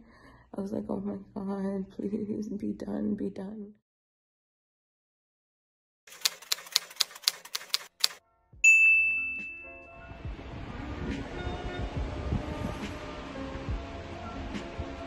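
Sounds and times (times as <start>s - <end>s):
typewriter keystrokes: 6.1s - 8.2s
typewriter carriage bell ding: 6.1s - 9.8s
soft background music: 9.3s - 15.0s.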